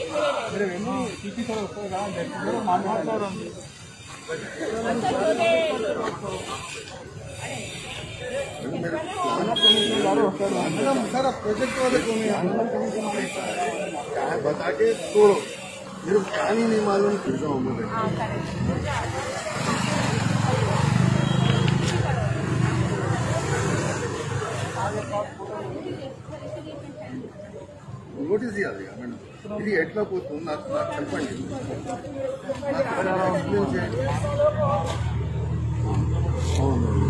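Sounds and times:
people talking indistinctly: 0:00.0 - 0:37.0.

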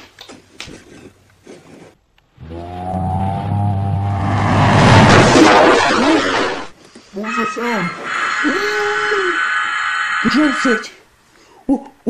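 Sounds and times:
low rumbling drone: 0:02.4 - 0:06.7
explosion-like crash: 0:03.5 - 0:06.7.

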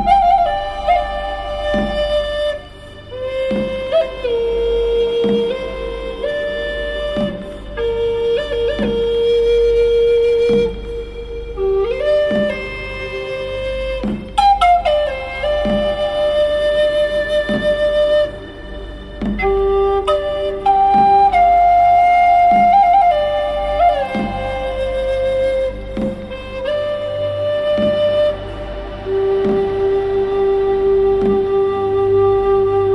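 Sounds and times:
flute slow melody: 0:00.0 - 0:32.9
low steady drone: 0:00.0 - 0:32.9
soft low beat: 0:00.0 - 0:32.9.

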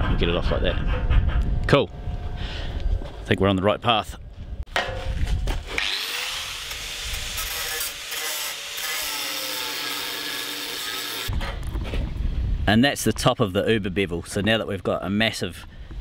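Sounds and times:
angle grinder cutting steel: 0:05.7 - 0:11.3.

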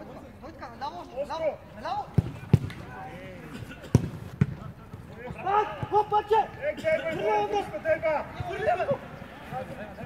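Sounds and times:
football kick thuds: 0:02.2 - 0:02.8, 0:03.8 - 0:04.7
players shouting: 0:05.2 - 0:10.0.

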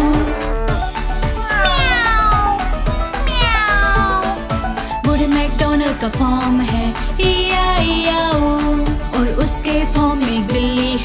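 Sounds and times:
cat meowing: 0:01.4 - 0:04.5
upbeat children's song: 0:05.0 - 0:11.0.

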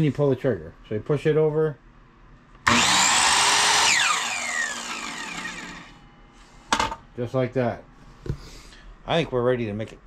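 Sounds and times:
miter saw whining: 0:02.7 - 0:06.0.

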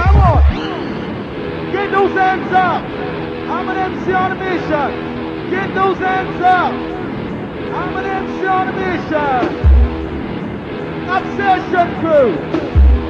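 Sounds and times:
deep bass hit: 0:00.0 - 0:00.6, 0:09.6 - 0:10.2
voice over music: 0:00.0 - 0:12.6
sustained synth chords: 0:00.0 - 0:13.0.

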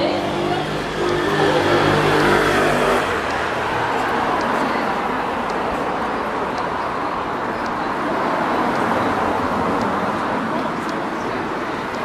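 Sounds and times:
rush of passing traffic: 0:00.0 - 0:12.0
vehicle engine hum: 0:00.0 - 0:12.0.

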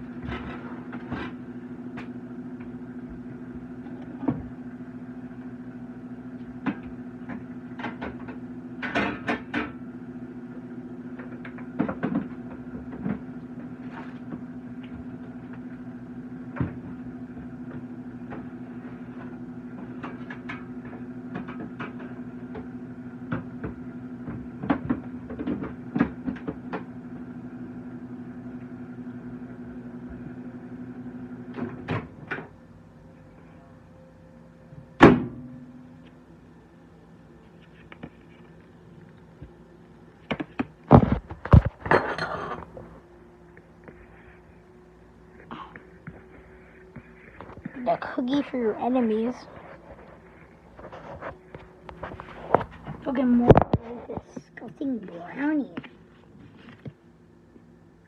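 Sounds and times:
kitchen appliance humming: 0:00.0 - 0:58.0.

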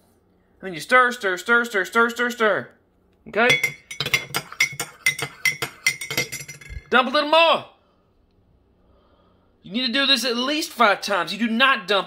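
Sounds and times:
metal spoon clinking in a mug: 0:03.4 - 0:06.9.

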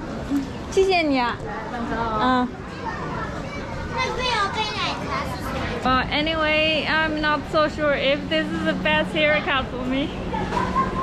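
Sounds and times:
faint voices: 0:01.4 - 0:11.0.

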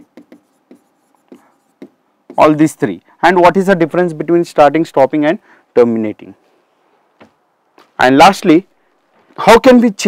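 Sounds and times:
stylus tapping and scratching glass: 0:00.0 - 0:02.6.

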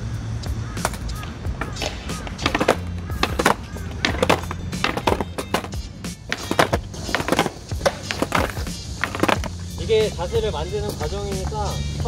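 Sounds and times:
background music with low bass: 0:00.0 - 0:12.0
skateboards clacking on concrete: 0:00.8 - 0:11.9.

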